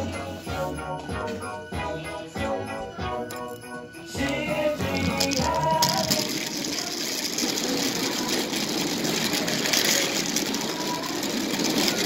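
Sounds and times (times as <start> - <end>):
music: 0.0 - 12.0
steady noisy rattle: 4.2 - 12.0.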